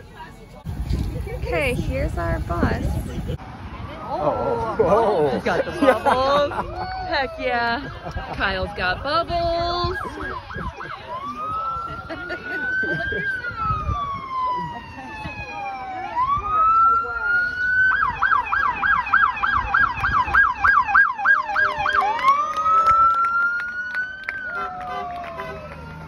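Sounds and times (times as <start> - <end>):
emergency vehicle siren: 9.8 - 26.0.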